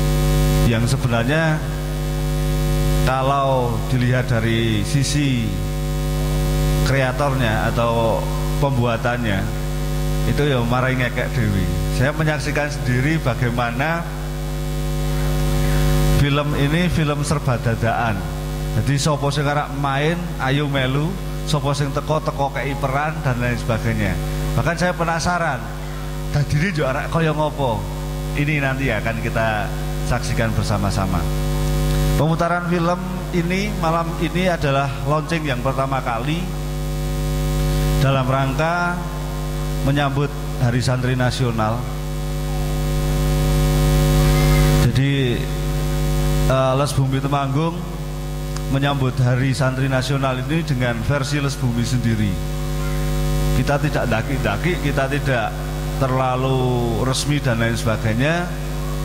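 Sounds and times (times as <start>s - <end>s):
electrical mains hum and buzz: 0.0s - 59.0s
public address system hiss: 0.0s - 59.0s.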